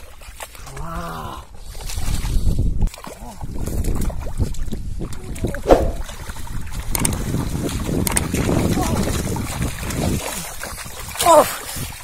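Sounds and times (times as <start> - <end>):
muddy water splashing: 0.0 - 12.0.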